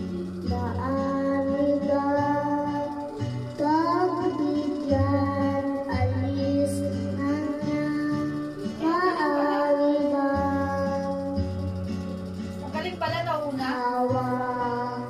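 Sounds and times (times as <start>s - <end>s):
boy singing into microphone: 0.0s - 11.7s, 13.5s - 15.0s
karaoke backing track: 0.0s - 15.0s.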